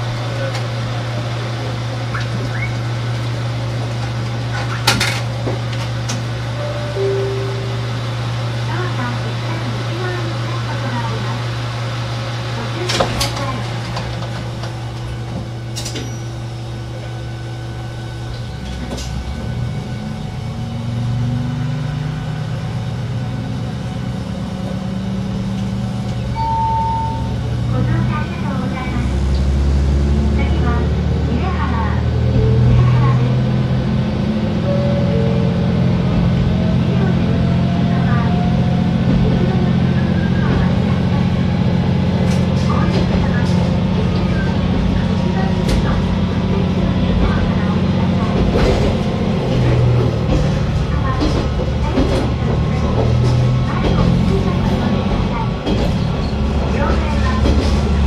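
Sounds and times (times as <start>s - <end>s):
diesel railcar engine revving: 0.0s - 58.0s
short beep: 6.6s - 8.0s, 26.4s - 27.4s.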